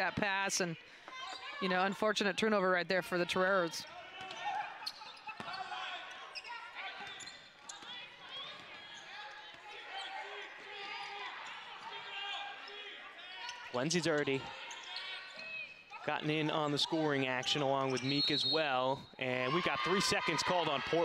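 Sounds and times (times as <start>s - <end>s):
players calling: 0.0s - 21.0s.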